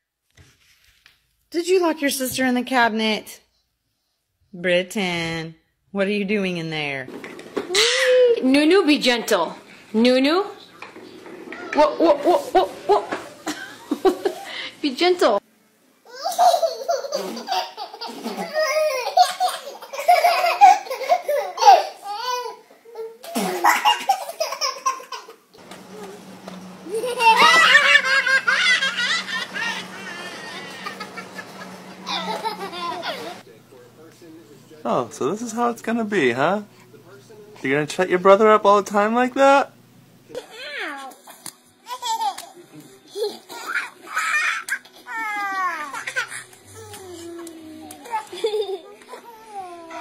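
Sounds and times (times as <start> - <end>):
baby squealing: 7.7 - 8.4, 28.5 - 31.4
babies laughing and babbling: 16.1 - 25.4, 26.9 - 33.4, 40.3 - 50.0
child's voice: 40.4 - 41.2.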